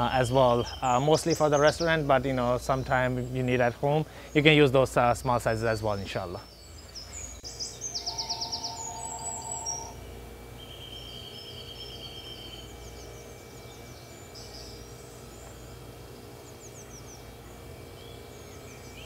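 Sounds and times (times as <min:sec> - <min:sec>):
small birds chirping and trilling: 0:00.0 - 0:19.0
steady low hum: 0:00.0 - 0:19.0.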